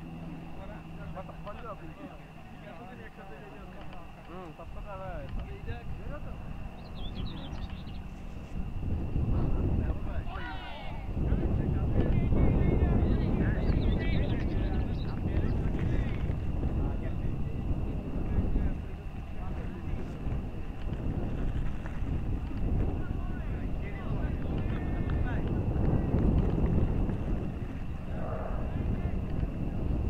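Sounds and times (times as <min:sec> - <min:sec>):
faint distant voices: 0:00.0 - 0:30.0
thin steady high whine: 0:00.0 - 0:30.0
wind buffeting microphone: 0:00.0 - 0:30.0.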